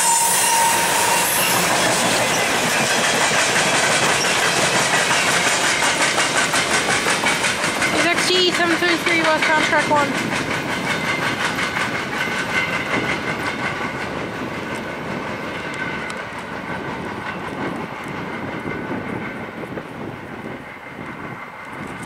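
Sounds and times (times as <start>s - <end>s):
train wheels clicking over rails: 0.0s - 22.0s.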